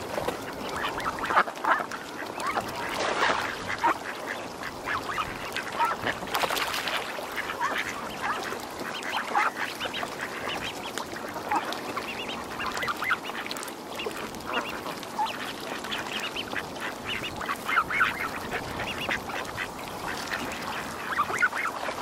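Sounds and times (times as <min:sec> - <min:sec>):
waterfowl honking and quacking: 0:00.1 - 0:22.0.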